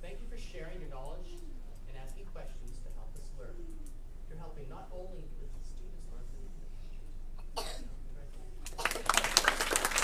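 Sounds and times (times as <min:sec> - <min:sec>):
faint murmur of voices: 0:00.9 - 0:09.1
person coughing: 0:07.4 - 0:08.0.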